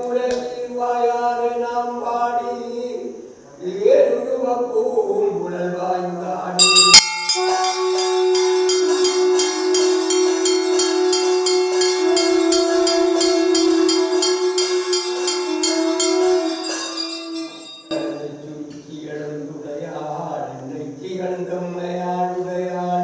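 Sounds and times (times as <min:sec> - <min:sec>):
chanting: 0:00.0 - 0:23.0
hand bell ringing rapidly: 0:06.6 - 0:18.0.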